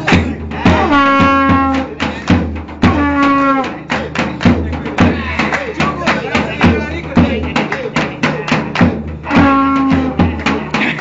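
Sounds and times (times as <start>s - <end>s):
drum strokes: 0.0s - 11.0s
trumpet: 0.7s - 2.0s, 2.8s - 3.9s, 9.2s - 10.6s
clapping: 5.4s - 6.8s, 7.6s - 9.0s.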